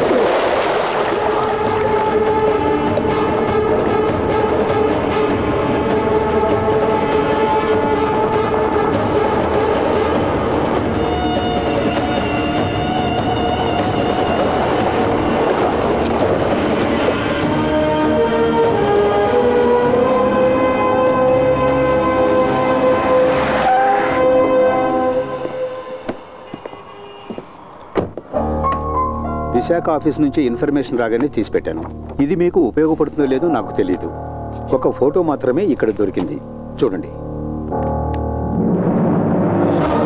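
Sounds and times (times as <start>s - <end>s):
water splash: 0.0s - 5.9s, 8.4s - 17.8s
film score sustained chords: 0.2s - 26.4s, 28.7s - 40.0s.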